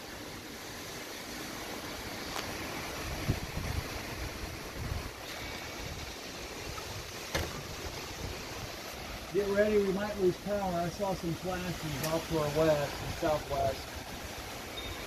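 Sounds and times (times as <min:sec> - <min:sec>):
storm wind rushing through trees: 0:00.0 - 0:15.0
wind buffeting microphone: 0:02.6 - 0:10.2.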